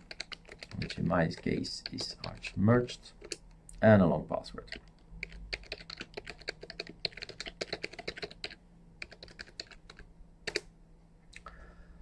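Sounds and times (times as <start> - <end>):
computer keyboard typing: 0.0 - 2.6, 3.2 - 3.5, 4.7 - 10.7.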